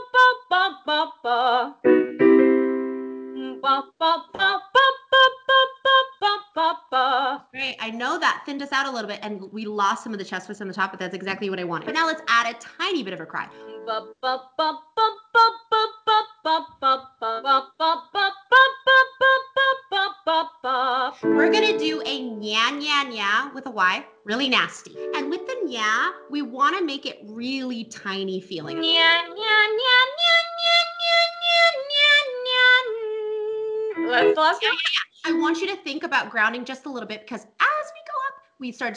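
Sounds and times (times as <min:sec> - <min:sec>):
woman singing vocal exercise: 0:00.0 - 0:01.8, 0:03.4 - 0:07.7, 0:13.5 - 0:22.4, 0:24.9 - 0:26.5, 0:28.6 - 0:35.6.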